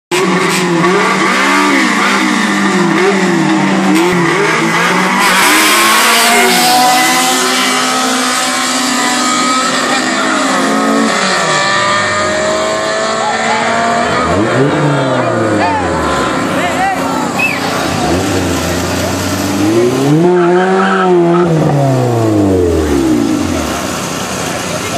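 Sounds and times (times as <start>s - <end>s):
race car engine revving: 0.1s - 24.9s
tire noise: 0.1s - 24.9s.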